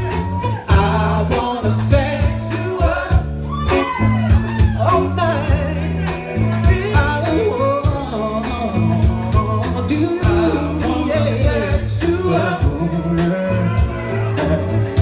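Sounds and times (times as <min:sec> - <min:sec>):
drum kit beat: 0:00.0 - 0:15.0
electric bass: 0:00.0 - 0:15.0
electric guitar: 0:00.0 - 0:15.0
man singing into microphone: 0:00.5 - 0:03.3, 0:04.8 - 0:14.3.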